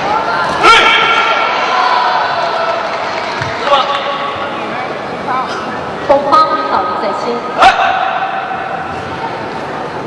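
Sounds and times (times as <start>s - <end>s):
arena crowd noise: 0.0s - 10.0s
loud high shout: 0.1s - 2.9s.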